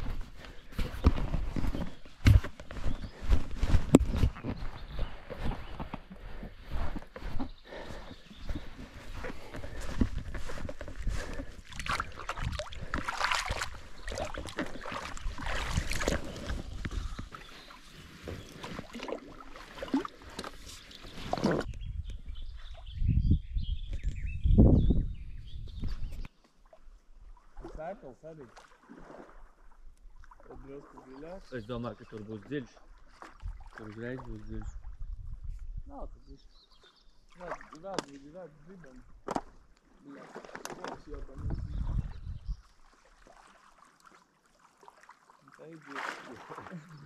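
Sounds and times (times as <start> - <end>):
wind buffeting microphone: 0.0 - 17.7, 21.6 - 26.3, 34.4 - 36.2, 41.1 - 42.6
footsteps in loose sand: 0.0 - 19.0
wading in shallow water: 0.0 - 22.9, 26.0 - 47.0
thumps and scuffs: 0.8 - 6.0.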